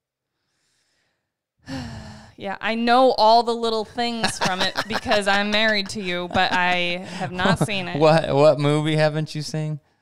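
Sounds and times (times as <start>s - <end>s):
person sighing: 1.7s - 2.3s, 7.0s - 7.6s.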